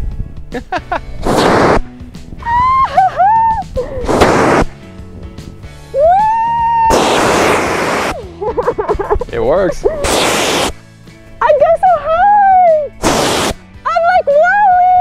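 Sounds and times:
fire extinguisher hissing: 1.2 - 1.8, 4.1 - 4.7, 6.9 - 8.2, 10.0 - 10.8, 13.0 - 13.6.

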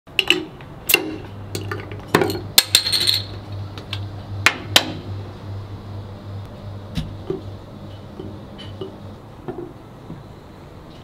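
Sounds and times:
metal bottle caps clattering: 1.6 - 3.4.

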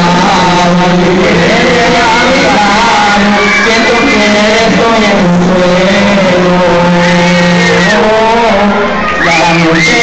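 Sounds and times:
men singing a chant: 0.0 - 10.0.

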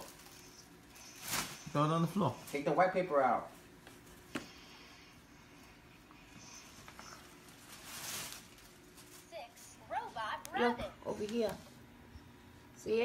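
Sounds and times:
tissue paper rustling: 0.0 - 2.9, 6.6 - 10.2.

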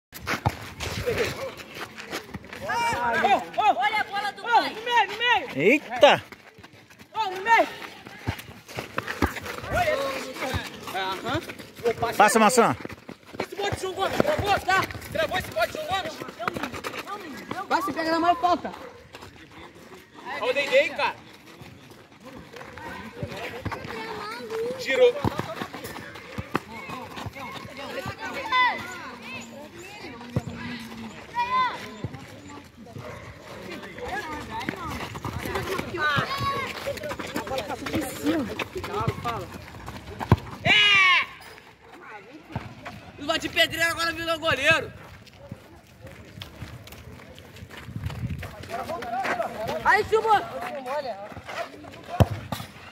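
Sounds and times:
players running: 0.2 - 52.9
players shouting: 2.6 - 6.1, 40.6 - 41.6.

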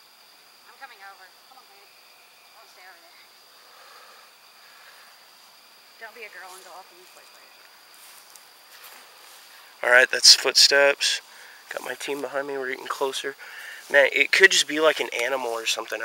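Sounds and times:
faint hiss: 0.0 - 16.0.

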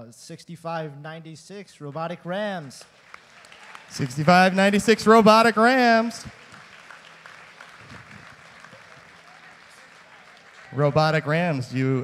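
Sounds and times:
faint audience applause: 2.3 - 11.8.

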